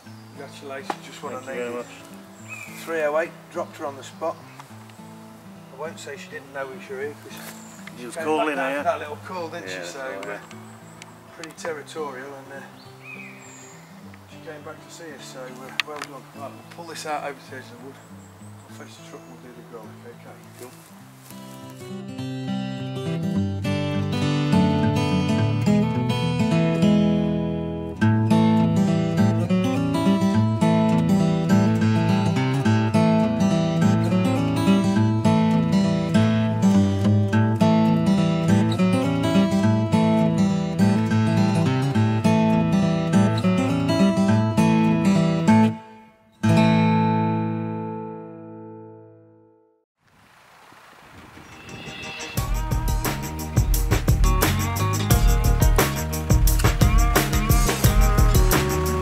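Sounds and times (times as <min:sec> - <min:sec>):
acoustic guitar music: 0:00.0 - 0:49.8, 0:51.6 - 0:59.0.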